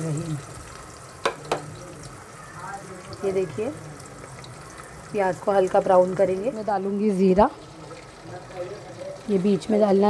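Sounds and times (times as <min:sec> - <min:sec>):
onions sizzling in hot oil: 0:00.0 - 0:10.0.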